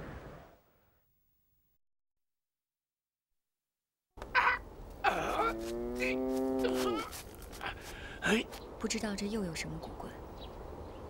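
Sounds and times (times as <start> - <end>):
ox mooing: 5.0 - 7.1.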